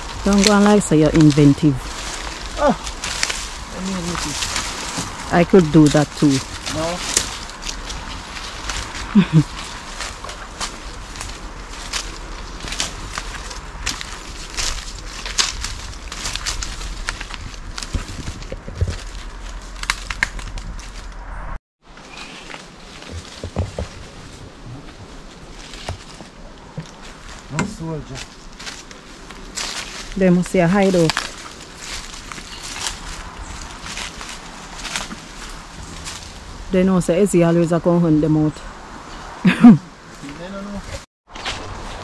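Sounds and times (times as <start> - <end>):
footsteps through dry leaves: 0.0 - 36.7, 38.7 - 42.0.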